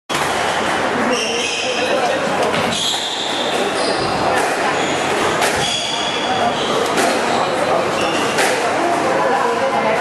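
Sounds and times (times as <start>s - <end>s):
indistinct voices: 0.1s - 10.0s
squash balls being struck: 2.5s - 7.6s, 8.2s - 9.0s.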